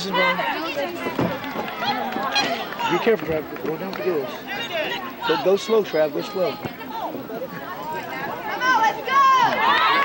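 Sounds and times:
overlapping voices chattering: 0:00.0 - 0:10.0.

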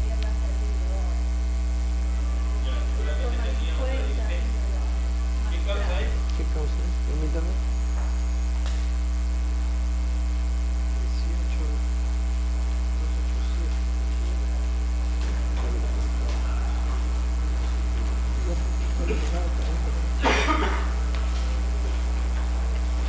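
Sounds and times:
faint indistinct voices: 0:00.0 - 0:08.6, 0:10.8 - 0:23.0
electrical mains hum: 0:00.0 - 0:23.0.

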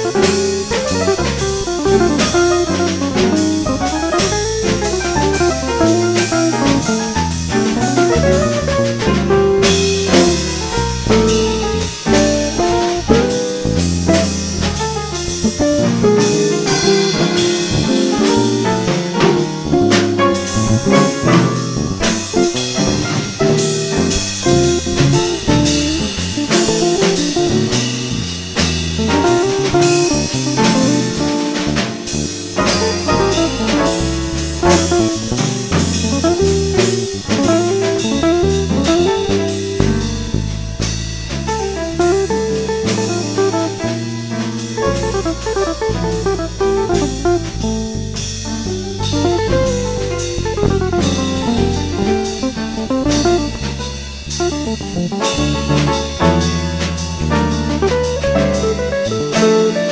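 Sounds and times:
drum kit cymbals: 0:00.0 - 0:59.9
jazz guitar melody: 0:00.0 - 0:59.9
walking bass: 0:00.0 - 0:59.9.

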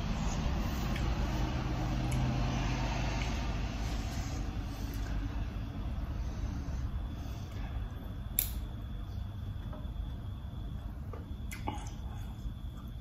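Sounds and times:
low motor hum: 0:00.0 - 0:13.0.

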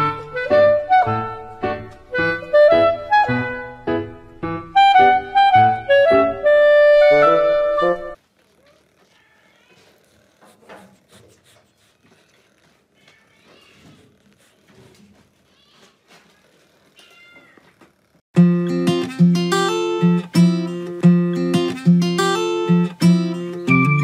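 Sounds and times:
plucked-string music with beat: 0:18.4 - 0:24.0.

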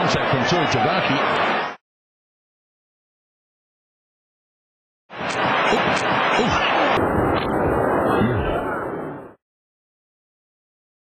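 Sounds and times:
stadium crowd noise: 0:00.0 - 0:01.8, 0:05.1 - 0:09.4.

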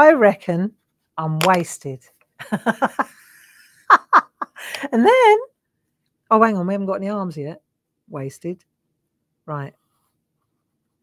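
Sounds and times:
woman giggling: 0:02.4 - 0:05.0
woman breathing: 0:04.5 - 0:04.9.

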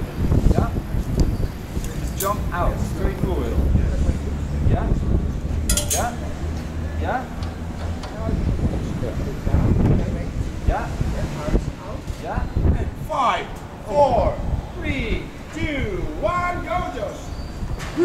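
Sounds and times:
metallic clink: 0:05.7 - 0:06.2.

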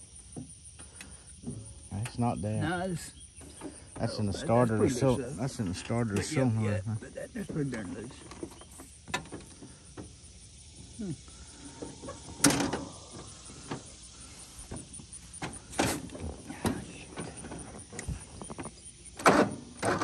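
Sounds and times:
clunks and knocks on mower: 0:07.5 - 0:10.1, 0:11.8 - 0:13.9, 0:14.7 - 0:20.0.

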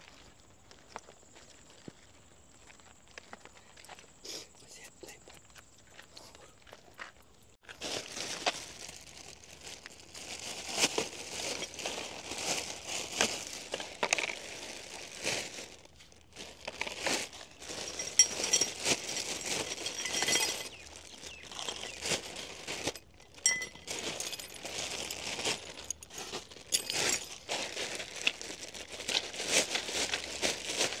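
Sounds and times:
plastic bags crinkling: 0:07.6 - 0:31.0
small parts clinking: 0:17.7 - 0:22.0, 0:22.7 - 0:27.5.

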